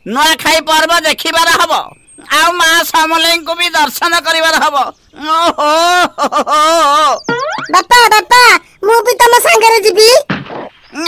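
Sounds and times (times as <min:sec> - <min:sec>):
cartoon character exclaiming: 0:06.8 - 0:08.6
cartoon boing twang: 0:07.2 - 0:07.9.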